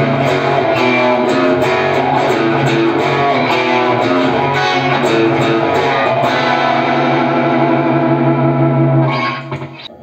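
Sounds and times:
electric guitar chord ringing: 0.0s - 9.9s.

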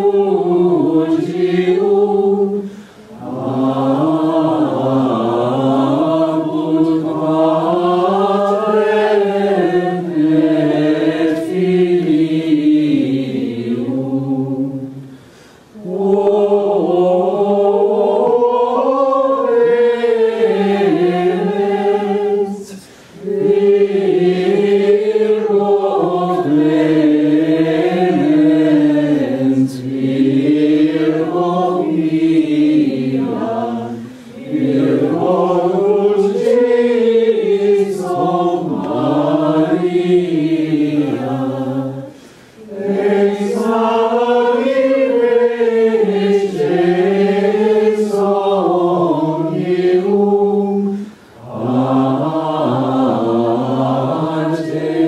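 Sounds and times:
men singing plainchant in unison: 0.0s - 15.1s, 15.8s - 55.0s.

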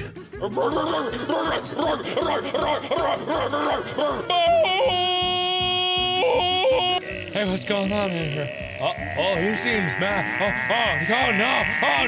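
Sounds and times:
person yodeling: 0.0s - 7.3s.

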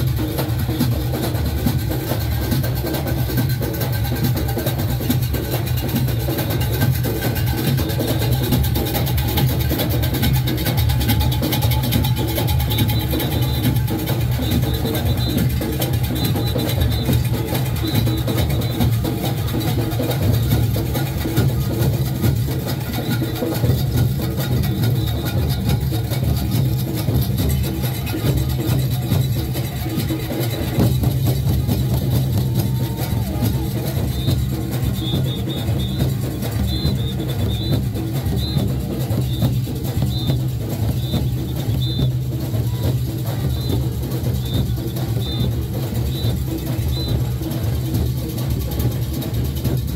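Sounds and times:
drums playing fast dense beat: 0.0s - 49.9s.

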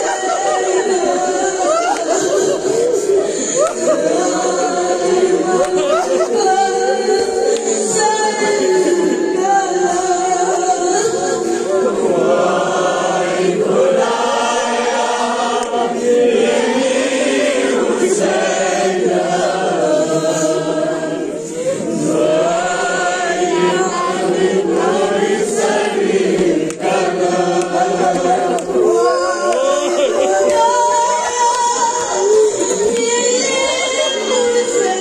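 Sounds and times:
men chanting in chorus: 0.0s - 35.0s
boy singing into a microphone: 29.0s - 35.0s.

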